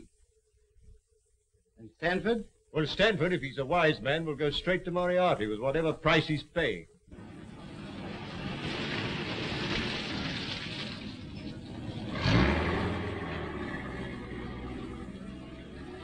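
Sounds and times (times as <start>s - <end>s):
car engine hum: 7.1s - 16.0s
road noise: 7.1s - 16.0s.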